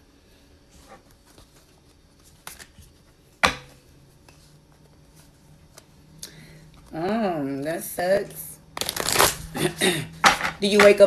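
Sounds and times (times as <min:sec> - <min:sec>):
cards being shuffled: 0:00.9 - 0:03.2, 0:08.8 - 0:09.4.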